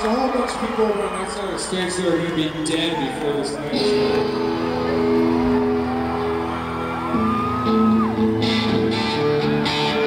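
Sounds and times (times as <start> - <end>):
live rock band: 3.7 - 10.0
strummed guitar: 7.1 - 10.0.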